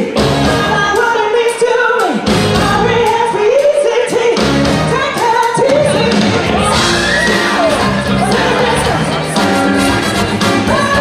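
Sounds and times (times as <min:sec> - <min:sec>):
woman singing into microphone: 0:00.0 - 0:06.7, 0:10.6 - 0:11.0
electric band playing: 0:00.0 - 0:11.0.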